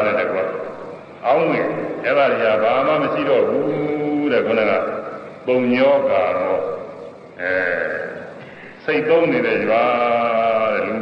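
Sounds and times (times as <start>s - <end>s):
man giving a sermon: 0.0s - 11.0s.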